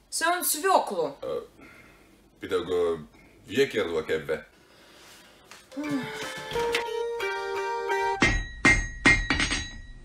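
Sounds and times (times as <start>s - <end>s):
background music: 5.7s - 8.5s.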